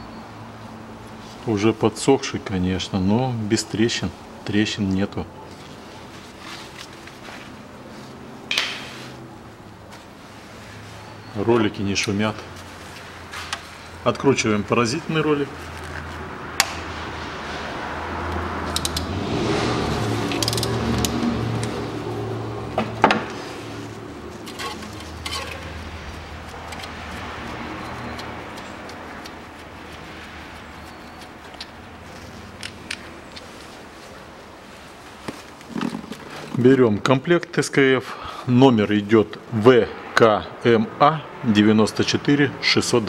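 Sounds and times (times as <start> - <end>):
metallic clicks: 18.7 - 19.1, 20.3 - 21.8.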